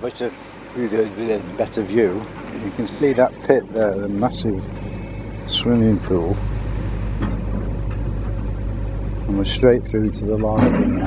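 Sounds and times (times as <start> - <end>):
diesel engine humming: 0.0 - 11.0.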